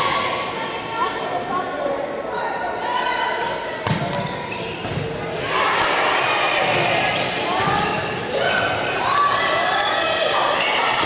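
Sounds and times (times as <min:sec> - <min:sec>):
people shouting and cheering: 0:02.3 - 0:11.0.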